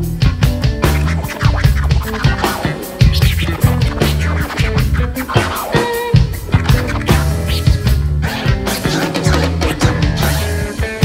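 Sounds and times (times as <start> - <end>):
drum kit: 0.0 - 11.0
electric bass guitar: 0.0 - 11.0
vinyl record scratching: 0.6 - 11.0.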